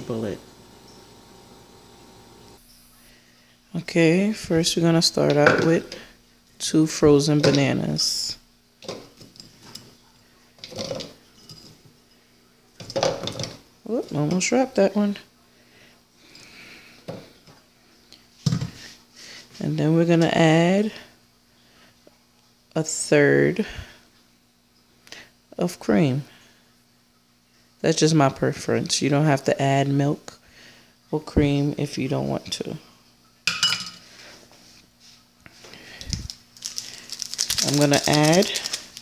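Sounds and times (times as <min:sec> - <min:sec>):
sharp clink on countertop: 0:33.5 - 0:34.0
paper packet crinkling: 0:35.9 - 0:39.0.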